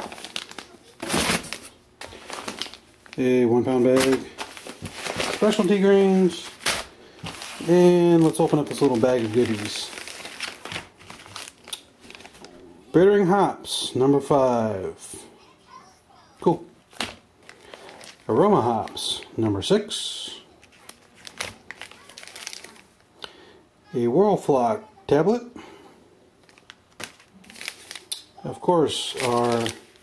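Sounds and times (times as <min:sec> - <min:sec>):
plastic bag and foil crinkling: 0:00.0 - 0:12.7, 0:16.9 - 0:23.1, 0:26.4 - 0:30.0.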